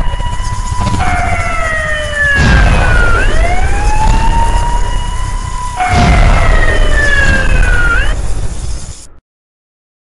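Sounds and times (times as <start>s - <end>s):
siren wailing: 0.0s - 8.7s
heavy low rumble: 0.0s - 9.2s.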